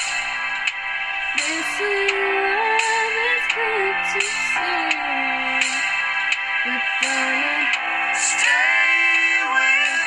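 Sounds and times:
backing track of sustained chords: 0:00.0 - 0:10.0
girl singing: 0:01.3 - 0:05.8, 0:06.6 - 0:07.8.

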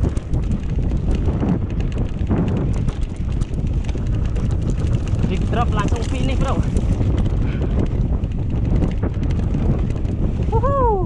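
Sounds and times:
bike clicks and rattles: 0:00.0 - 0:10.5
bike tyres rumbling: 0:00.0 - 0:11.0
wind buffeting microphone: 0:00.0 - 0:11.0.

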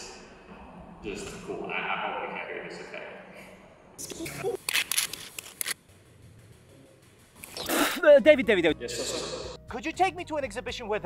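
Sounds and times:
sharp clicks and rattles: 0:04.6 - 0:07.6.

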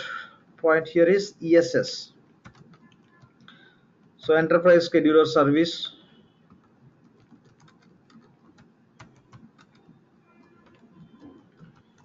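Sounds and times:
typing on computer keyboard: 0:02.4 - 0:04.6, 0:06.5 - 0:12.0.

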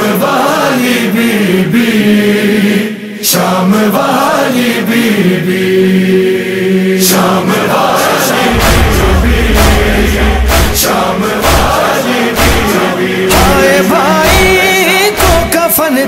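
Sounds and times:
person chanting a lament: 0:06.8 - 0:16.0.

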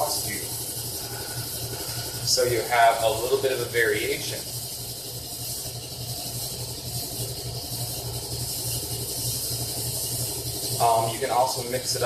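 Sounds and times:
fish tank hiss: 0:00.0 - 0:12.0
refrigerator hum: 0:00.0 - 0:12.0.

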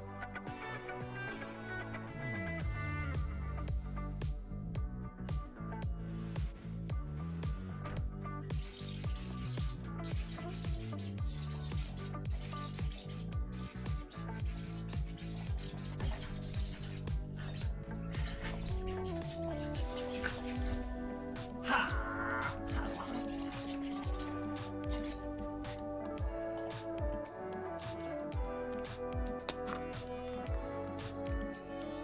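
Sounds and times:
background music: 0:00.0 - 0:32.0
crisp high ticks: 0:08.5 - 0:17.1, 0:18.2 - 0:20.9, 0:22.7 - 0:25.3.

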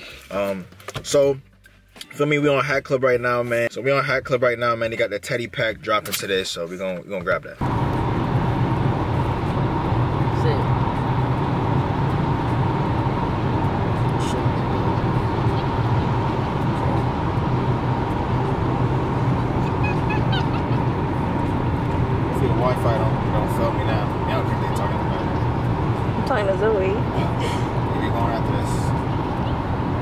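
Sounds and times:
car cabin road and engine drone: 0:00.0 - 0:30.0.

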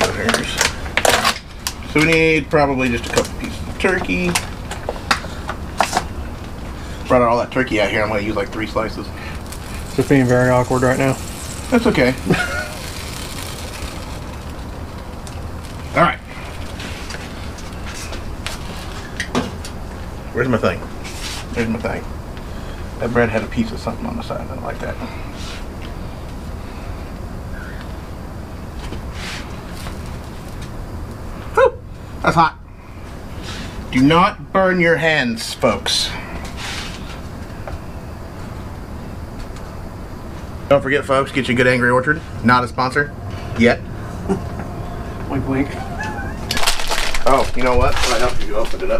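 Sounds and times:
gas burners rushing: 0:00.0 - 0:32.1
low rumbling noise: 0:00.0 - 0:35.0.

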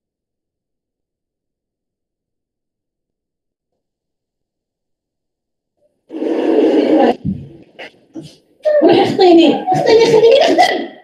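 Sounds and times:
loud rough sustained sound: 0:06.1 - 0:07.6.

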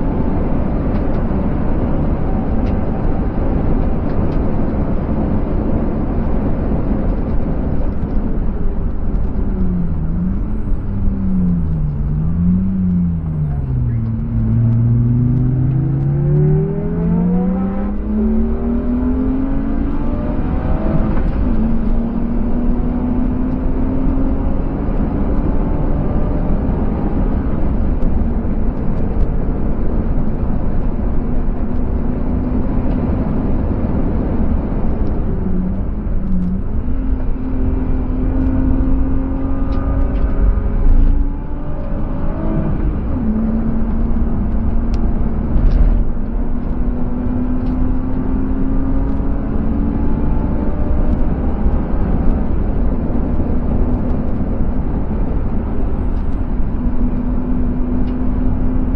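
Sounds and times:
car engine accelerating: 0:00.0 - 0:58.9
road and wind rumble: 0:00.0 - 0:58.9.

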